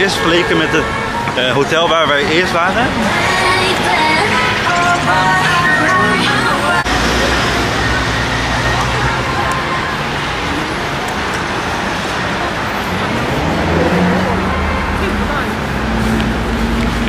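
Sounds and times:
background voices: 0.0s - 15.7s
vehicles passing: 0.0s - 17.0s.

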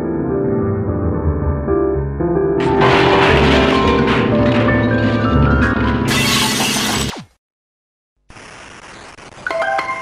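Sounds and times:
piano with heavy low chords: 0.0s - 6.1s.

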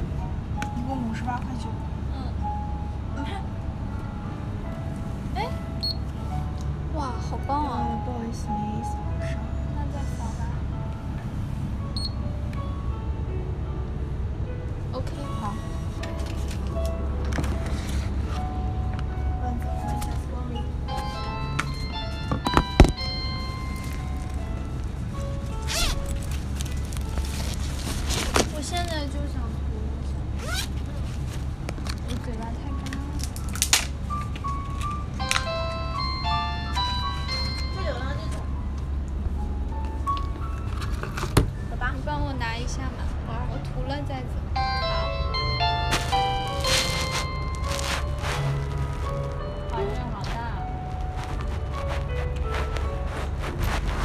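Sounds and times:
background music: 0.0s - 29.8s, 32.1s - 54.0s
electronic chime melody: 20.9s - 24.6s, 35.2s - 38.6s, 44.6s - 48.7s.

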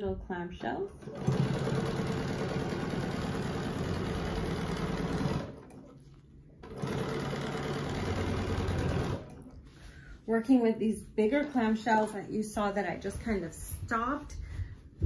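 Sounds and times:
sewing machine running: 1.0s - 5.9s, 6.6s - 9.5s.

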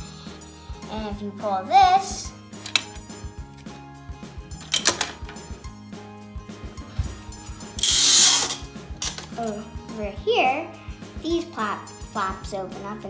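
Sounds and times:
background music: 0.0s - 13.0s
plastic parts clicking and rattling: 2.6s - 3.1s, 4.6s - 5.4s.

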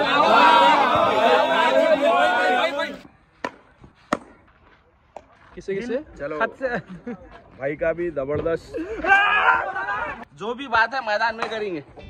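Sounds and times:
men shouting together: 0.0s - 3.0s
cricket bat striking ball: 3.4s - 4.4s.

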